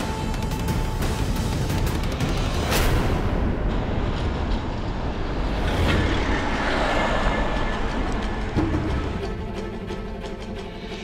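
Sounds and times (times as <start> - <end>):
road noise: 3.3 - 11.0.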